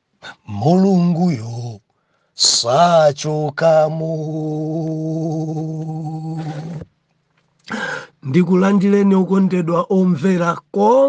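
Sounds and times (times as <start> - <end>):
breathy vocal sound: 0.2 - 0.6, 4.6 - 6.9, 7.6 - 8.2
man singing long note: 2.5 - 6.8.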